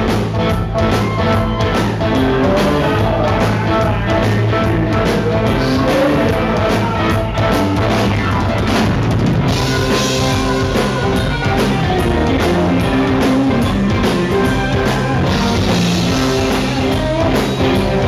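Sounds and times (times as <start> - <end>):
blues-rock band playing: 0.0 - 18.0
drum kit: 0.0 - 18.0
electric guitars: 0.0 - 18.0.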